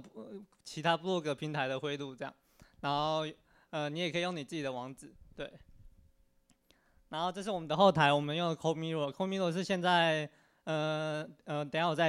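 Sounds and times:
man speaking: 0.0 - 5.7, 7.1 - 12.0.

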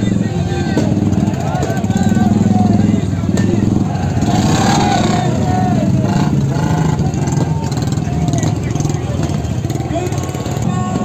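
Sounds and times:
crowd voices and shouts: 0.0 - 11.0
motorcycle engines running: 0.0 - 11.0.

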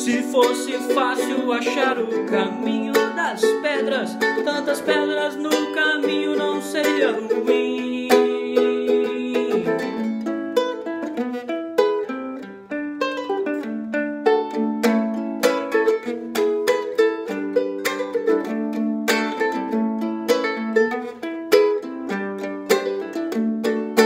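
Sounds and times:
ukulele playing: 0.0 - 24.0.

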